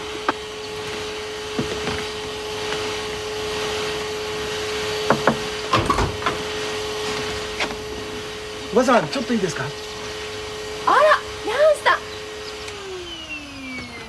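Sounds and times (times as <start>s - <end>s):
vacuum cleaner running: 0.0s - 14.0s.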